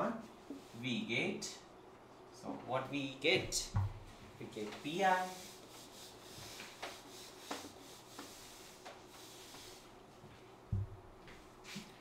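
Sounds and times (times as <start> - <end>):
duster rubbing on whiteboard: 4.5 - 10.1.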